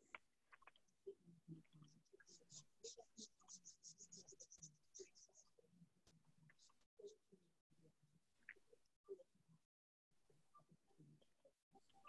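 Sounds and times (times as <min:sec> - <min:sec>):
pen scratching on paper: 0:02.3 - 0:05.5.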